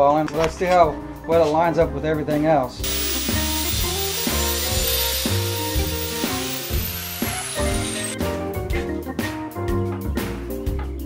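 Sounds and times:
background music: 0.0 - 11.0
angle grinder grinding metal: 2.8 - 8.2.

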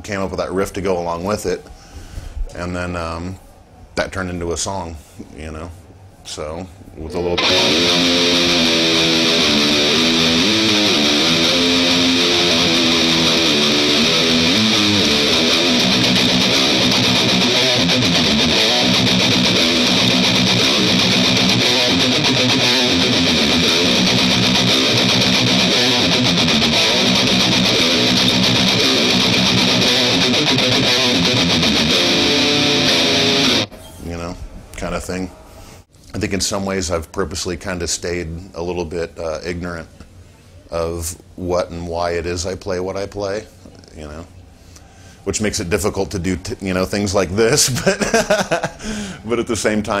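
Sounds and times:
distorted electric guitar riff: 7.2 - 33.7.

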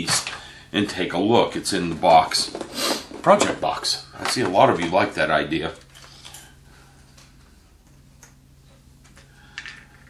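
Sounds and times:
objects clattering: 1.9 - 5.0, 9.1 - 10.0.

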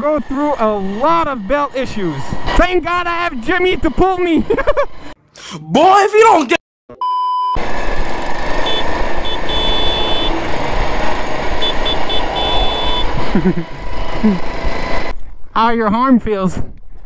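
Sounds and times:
lawnmower engines running: 0.0 - 5.2, 7.6 - 15.3
test-tone beep: 6.9 - 7.6
wind noise: 16.2 - 17.0.

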